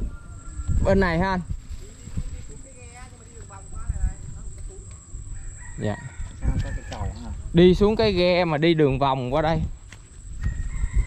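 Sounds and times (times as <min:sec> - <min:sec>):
rooster crowing: 0:00.0 - 0:01.1, 0:05.3 - 0:07.5, 0:10.3 - 0:11.0.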